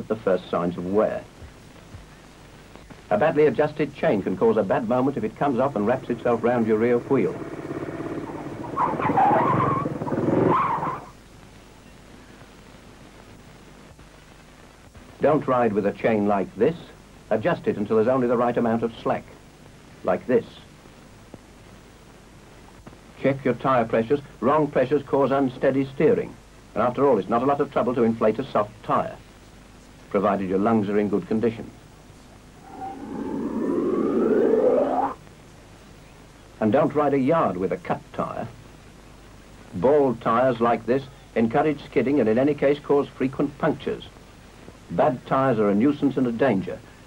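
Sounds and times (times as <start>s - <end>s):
motorcycle engine running: 6.6s - 8.8s
tyre skidding screech: 8.2s - 11.1s, 32.6s - 35.2s
breathy air rush with rising whistle: 32.6s - 35.2s.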